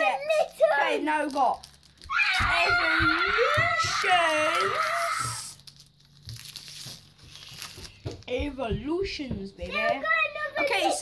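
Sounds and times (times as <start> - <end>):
foil wrapper crinkling and tearing: 0.0 - 8.3.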